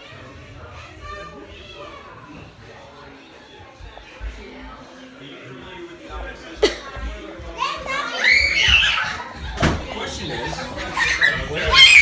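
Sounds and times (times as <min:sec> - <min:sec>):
children's voices: 0:00.0 - 0:05.1, 0:06.6 - 0:12.0.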